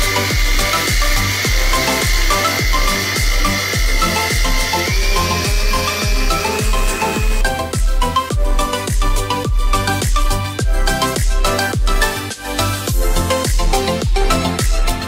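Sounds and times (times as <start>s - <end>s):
mixer grinder motor whine: 0.0s - 10.5s
background music with drum beat: 0.0s - 15.0s.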